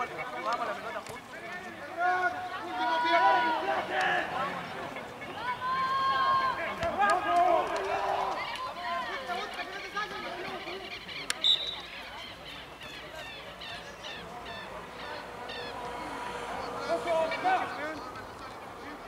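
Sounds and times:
people shouting and calling out: 0:00.0 - 0:19.0.

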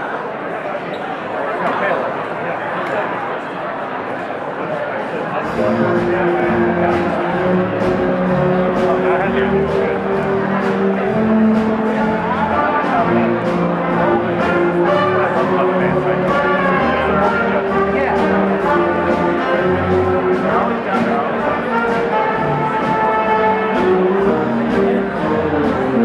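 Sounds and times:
jazz big band playing: 0:05.4 - 0:26.0.

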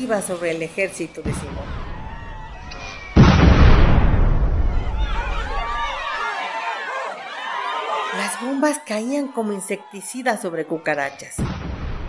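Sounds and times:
falling bomb whistling: 0:01.7 - 0:05.8
loud explosion with deep rumble: 0:03.0 - 0:05.2, 0:11.4 - 0:12.0.

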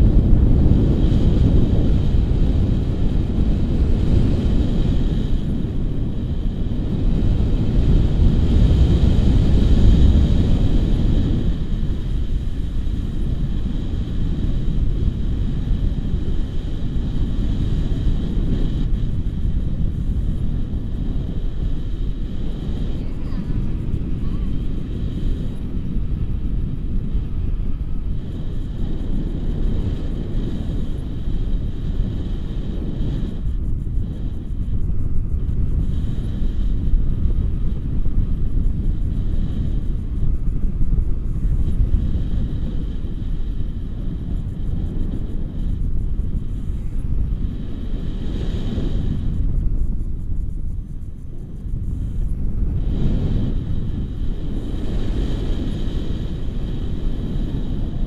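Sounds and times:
wind rushing over microphone: 0:00.0 - 0:58.0.

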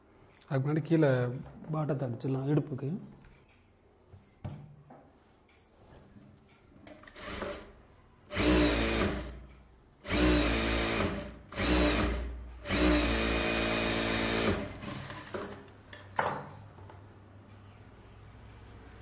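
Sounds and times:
sewing machine stitching: 0:07.0 - 0:09.4, 0:10.0 - 0:15.6.

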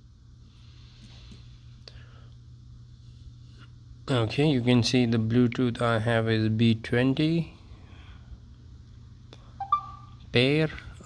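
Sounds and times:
rising two-note phone chime: 0:09.6 - 0:10.2.

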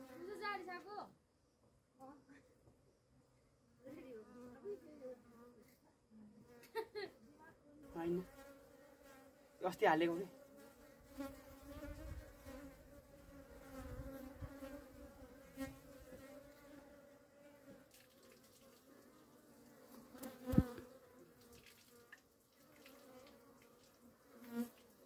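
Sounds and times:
bees buzzing: 0:07.9 - 0:17.9, 0:18.5 - 0:25.0
bee flying close past: 0:07.9 - 0:25.0.

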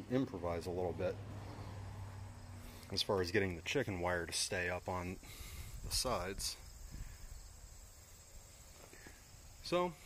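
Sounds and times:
high-pitched insect chorus: 0:01.6 - 0:10.0.

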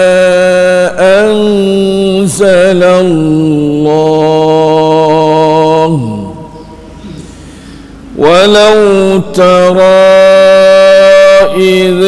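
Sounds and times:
man chanting: 0:00.0 - 0:07.3, 0:08.1 - 0:12.0.

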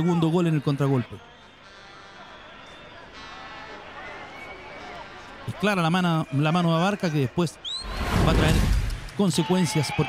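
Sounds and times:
low background crowd noise: 0:00.0 - 0:10.0.

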